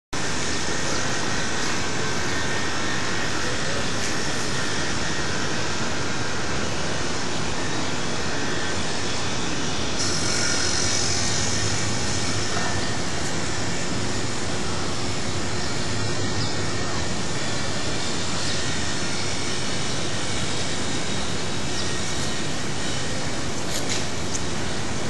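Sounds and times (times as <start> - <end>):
steady rushing noise: 0.2 - 25.0.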